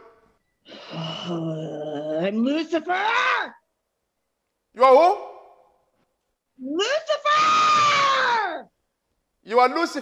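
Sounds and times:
woman screaming: 0:06.7 - 0:08.7.

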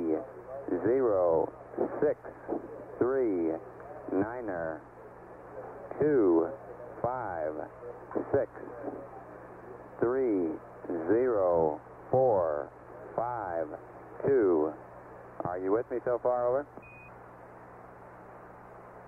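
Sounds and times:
man speaking over radio: 0:00.0 - 0:14.8, 0:15.4 - 0:16.7
steady low hum: 0:00.0 - 0:19.0.

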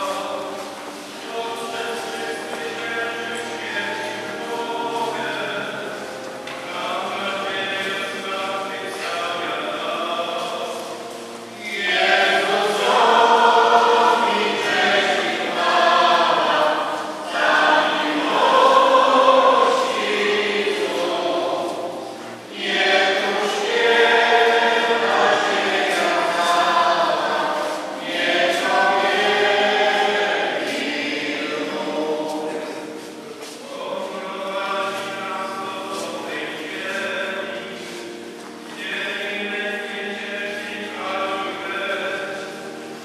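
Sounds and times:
group singing a hymn: 0:00.0 - 0:43.0.

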